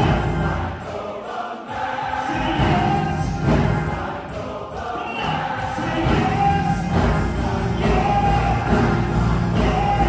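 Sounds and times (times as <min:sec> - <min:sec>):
gospel choir singing: 0:00.0 - 0:10.0
piano accompaniment: 0:02.3 - 0:10.0.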